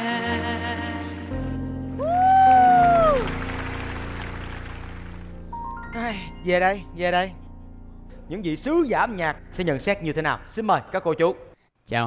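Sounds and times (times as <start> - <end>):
backing music: 0.0 - 10.4
audience applause: 2.0 - 5.4.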